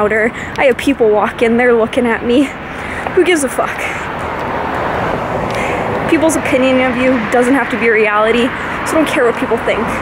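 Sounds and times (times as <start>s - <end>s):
road traffic rushing by: 0.0s - 10.0s.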